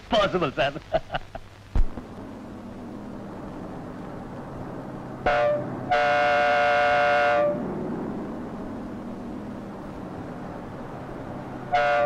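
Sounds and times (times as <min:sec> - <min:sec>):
bus engine rumbling: 0:00.0 - 0:12.0
bus air horn blast: 0:05.2 - 0:07.7, 0:11.7 - 0:12.0.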